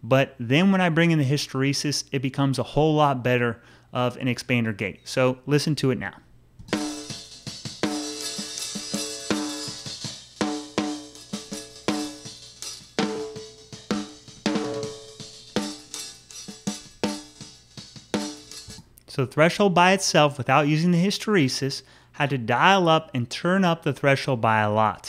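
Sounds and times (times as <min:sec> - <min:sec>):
gated snare drum hits: 0:06.6 - 0:18.8.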